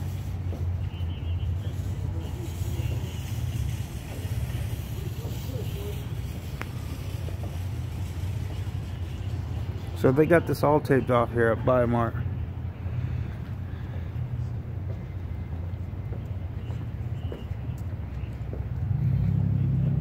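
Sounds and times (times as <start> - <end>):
road traffic rumble: 0.0 - 20.0.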